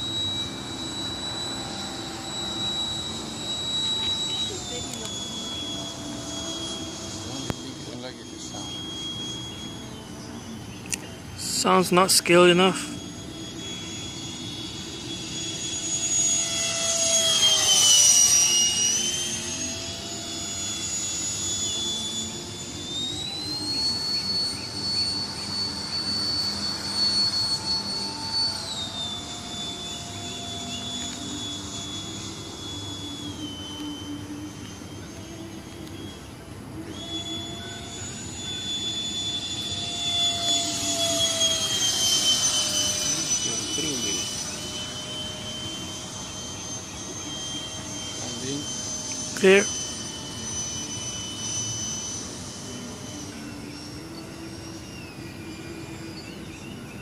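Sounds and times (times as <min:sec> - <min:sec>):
model jet ducted fan whine: 0:00.0 - 0:57.0.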